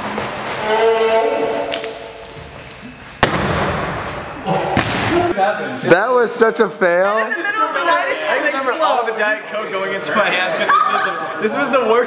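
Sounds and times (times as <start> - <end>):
sharp thump: 3.2 - 4.2
people calling out: 10.5 - 11.4.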